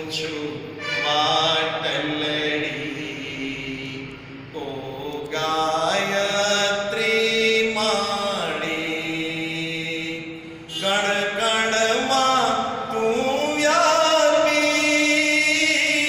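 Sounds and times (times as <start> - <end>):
person chanting long notes: 0.0 - 5.1.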